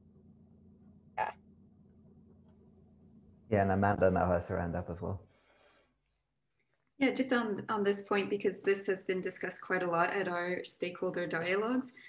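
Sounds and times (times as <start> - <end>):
faint audio line hum: 0.0 - 12.0.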